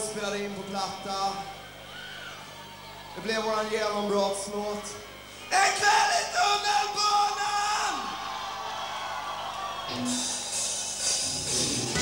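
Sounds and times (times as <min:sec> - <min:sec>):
drums: 0:09.0 - 0:12.0
rock band playing: 0:09.9 - 0:12.0.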